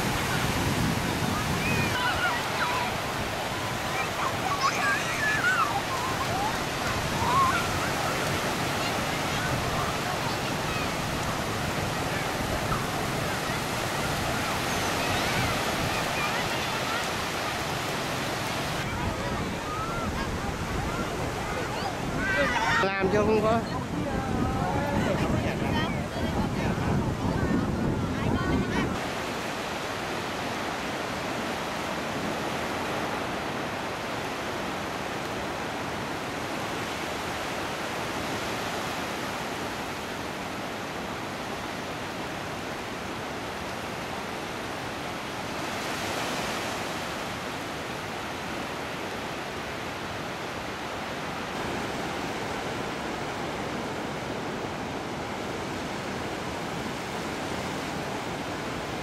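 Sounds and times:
sea surf washing onto beach: 0:00.0 - 0:59.0.

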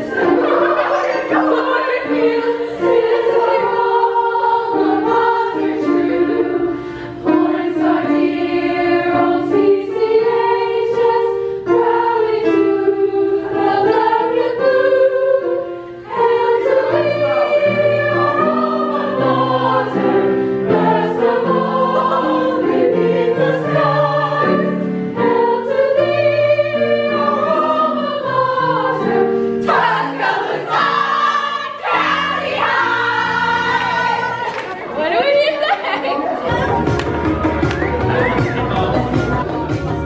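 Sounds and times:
choir singing in parts: 0:00.0 - 0:40.0.

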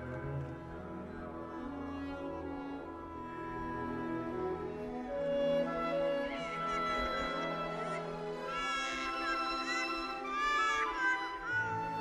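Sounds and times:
sustained instrumental music: 0:00.0 - 0:12.0.

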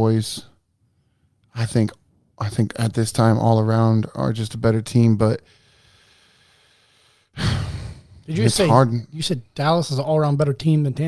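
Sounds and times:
man sighing heavily: 0:07.4 - 0:08.3.

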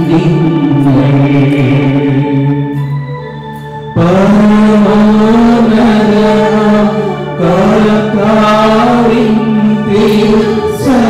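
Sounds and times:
loud sung chant: 0:04.0 - 0:11.0.

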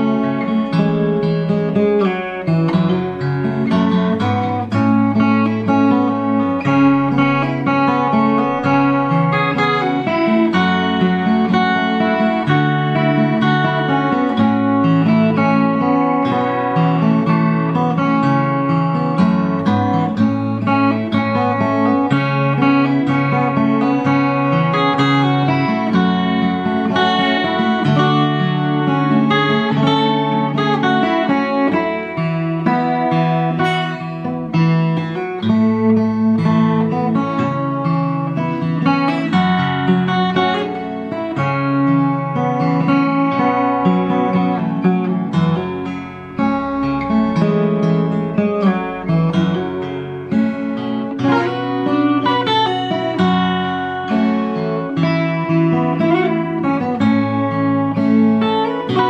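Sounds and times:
acoustic guitar fingerstyle melody: 0:00.0 - 0:59.0.

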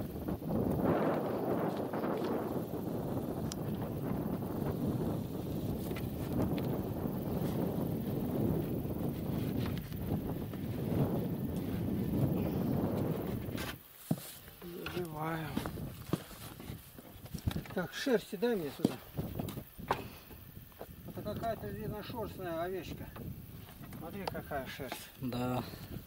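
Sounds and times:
wind buffeting microphone: 0:00.0 - 0:13.9, 0:14.6 - 0:26.0.

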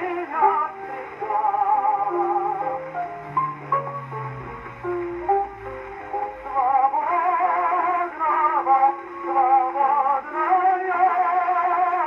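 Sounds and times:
male tenor singing with vibrato: 0:00.0 - 0:02.8, 0:06.1 - 0:12.0
piano-like accompaniment: 0:00.0 - 0:12.0.

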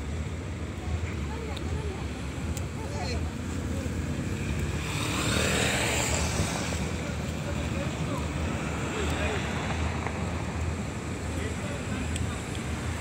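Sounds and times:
steady low traffic rumble: 0:00.0 - 0:13.0
car passing: 0:03.0 - 0:13.0.

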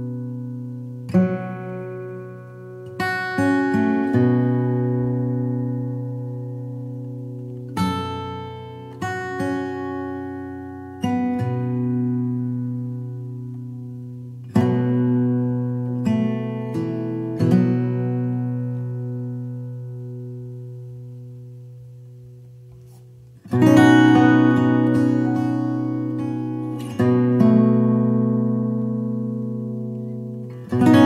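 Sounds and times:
slow acoustic guitar music: 0:00.0 - 0:31.0.

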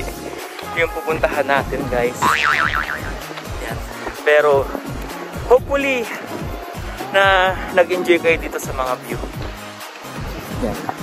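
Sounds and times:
background music: 0:00.0 - 0:11.0
cartoon boing sound effect: 0:02.2 - 0:03.2.

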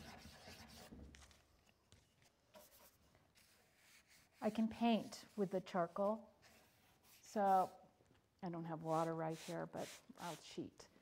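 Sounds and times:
charcoal scratching on paper: 0:00.0 - 0:01.4, 0:02.5 - 0:07.8, 0:08.8 - 0:10.6.

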